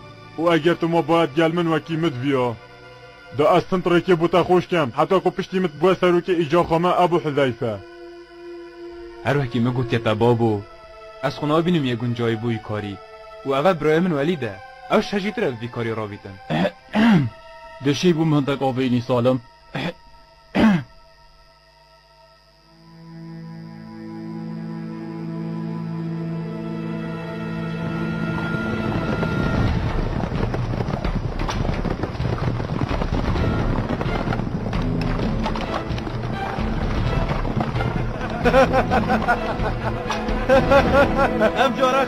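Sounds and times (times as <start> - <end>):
quiet background music: 0.0 - 42.0
horse hooves galloping: 27.5 - 42.0
man speaking: 41.5 - 42.0.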